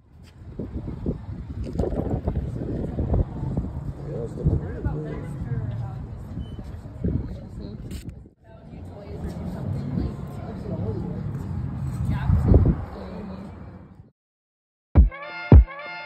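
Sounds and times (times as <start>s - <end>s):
traffic noise: 0.0s - 14.1s.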